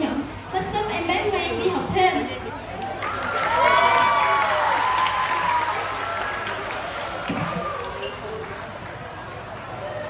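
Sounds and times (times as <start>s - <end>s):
audience applauding: 2.8s - 10.0s.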